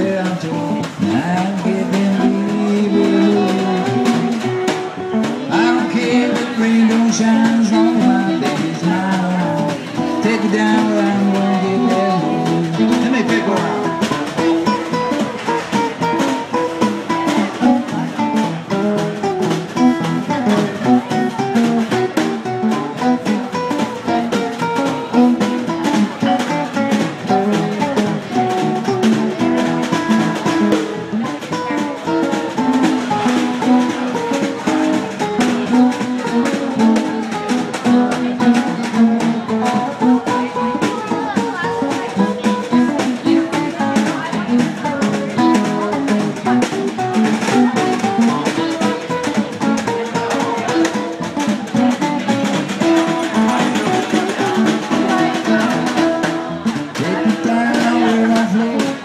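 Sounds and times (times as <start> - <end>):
drum kit: 0.0 - 59.0
guitars playing blues: 0.0 - 59.0.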